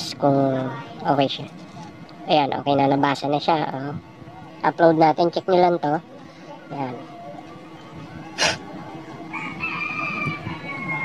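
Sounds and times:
rooster crowing: 9.3 - 11.0.

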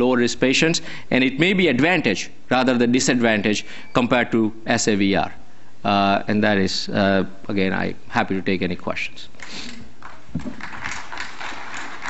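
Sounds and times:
audience applauding: 10.0 - 12.0.

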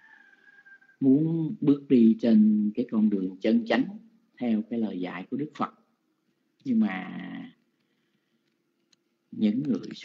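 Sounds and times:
man speaking: 1.0 - 5.9, 6.6 - 7.6, 9.3 - 10.0.

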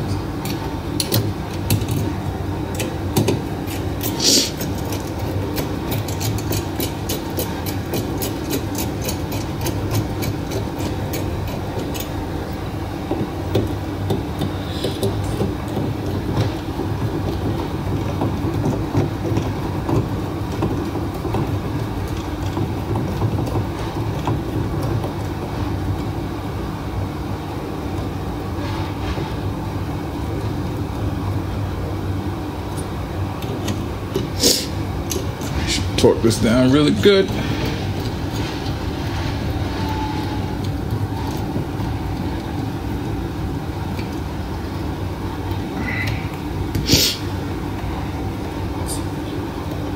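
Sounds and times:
low mechanical drone: 0.0 - 49.9.

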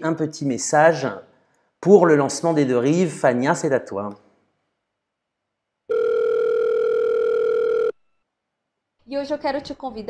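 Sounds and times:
telephone call tone: 5.9 - 8.0.

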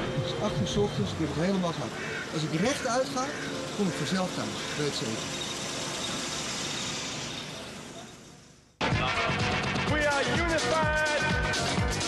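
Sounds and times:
distant traffic hiss: 0.0 - 8.8.

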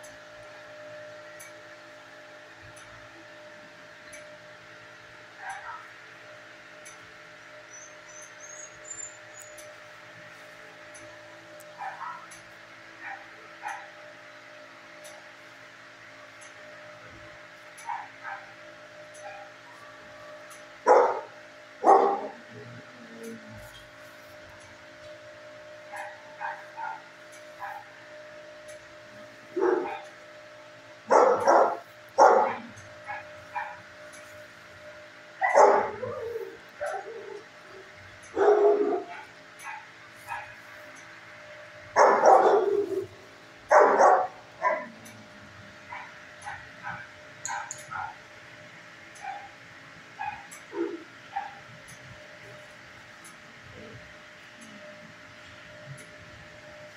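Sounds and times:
steady low hum: 0.0 - 56.9
dogs barking: 5.3 - 6.0, 11.0 - 12.4, 13.0 - 14.1, 17.7 - 23.6, 25.8 - 28.1, 29.5 - 30.3, 31.1 - 34.4, 35.4 - 40.8, 41.5 - 48.3, 49.2 - 51.7.

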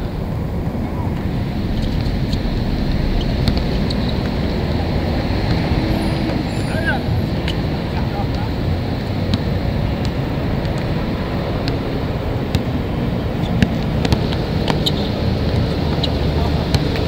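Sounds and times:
wind rumble on microphone: 0.0 - 17.0
basketball bouncing on court: 9.2 - 12.8, 13.4 - 17.0.

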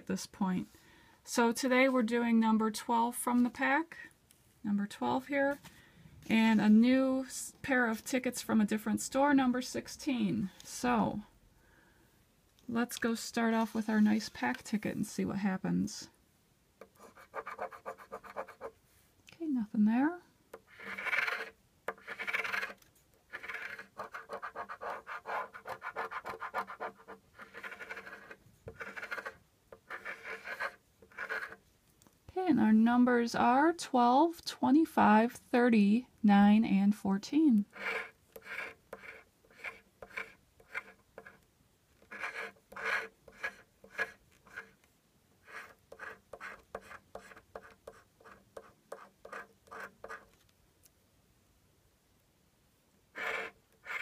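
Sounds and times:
lottery ticket being scratched: 20.6 - 31.6, 37.7 - 41.4, 42.0 - 44.8, 53.2 - 54.0.

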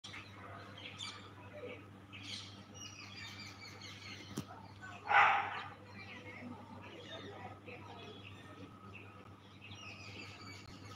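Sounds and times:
birds chirping: 0.0 - 10.9.

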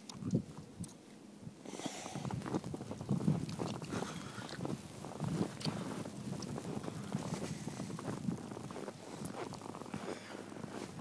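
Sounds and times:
footsteps crunching in snow: 1.7 - 11.0.

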